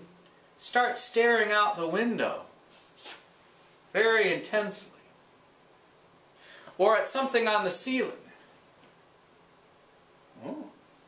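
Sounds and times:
man saying ooh: 10.4s - 10.8s.

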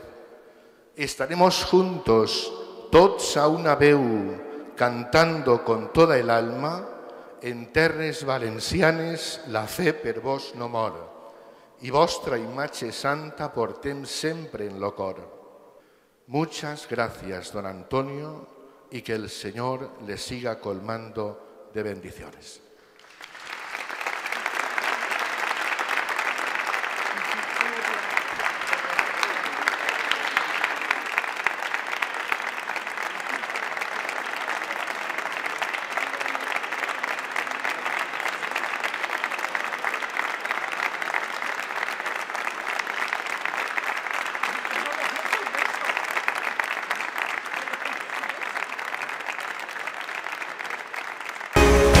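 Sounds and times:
congregation applauding: 22.8s - 52.0s.

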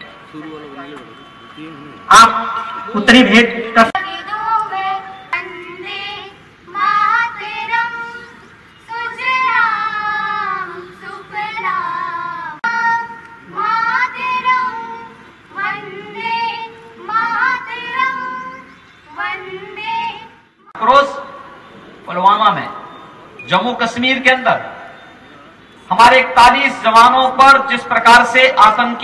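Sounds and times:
high voice singing: 3.9s - 20.4s.

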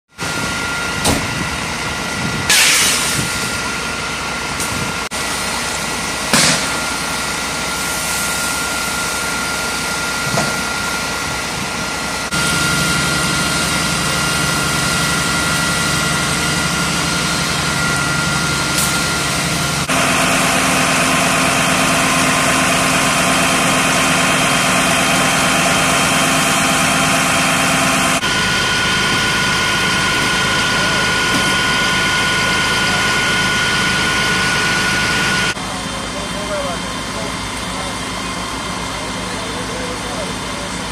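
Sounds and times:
fire engine pump running: 0.1s - 40.9s.

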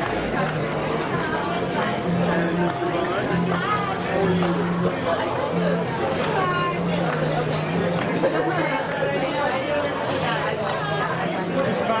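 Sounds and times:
chatter of many people: 0.0s - 12.0s.

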